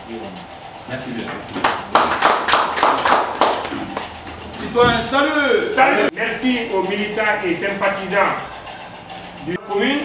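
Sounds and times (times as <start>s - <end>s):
small group clapping: 1.6s - 4.4s.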